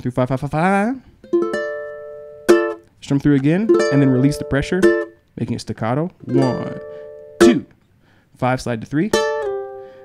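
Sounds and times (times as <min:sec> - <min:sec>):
ukulele chord strums: 0:01.2 - 0:05.3, 0:06.2 - 0:07.8, 0:09.1 - 0:10.0.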